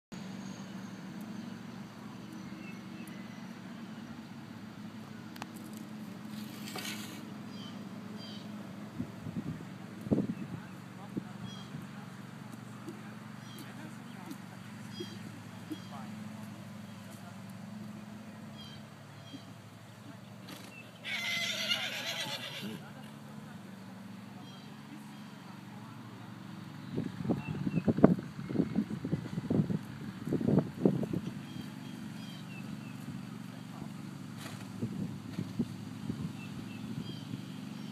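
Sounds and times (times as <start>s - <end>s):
horse whinnying: 21.0s - 22.8s.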